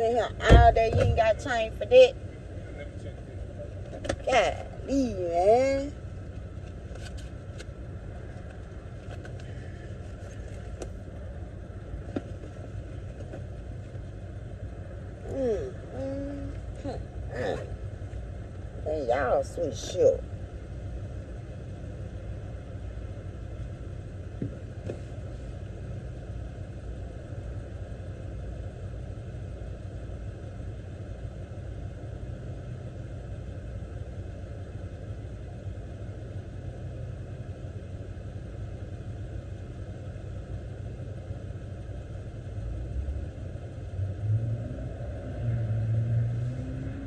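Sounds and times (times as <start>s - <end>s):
car engine idling: 0.0s - 47.0s.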